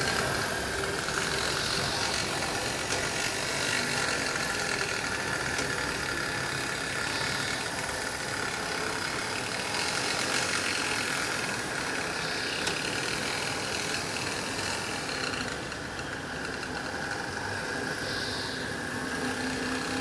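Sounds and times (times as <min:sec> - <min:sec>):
model train rumbling and rattling: 0:00.0 - 0:20.0.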